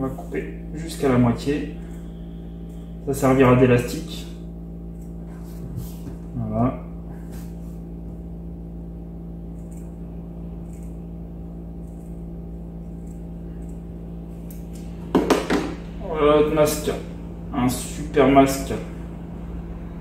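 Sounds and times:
steady background hum: 0.0s - 20.0s.

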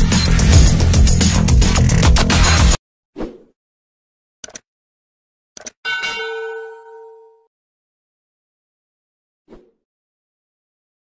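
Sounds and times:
sharp click: 4.4s - 4.7s, 5.6s - 5.8s
bell chime ringing: 5.9s - 7.5s.

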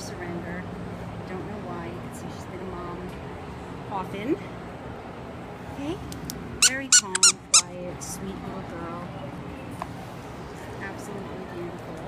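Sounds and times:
squeaky dog toy squeaking: 6.6s - 7.7s.

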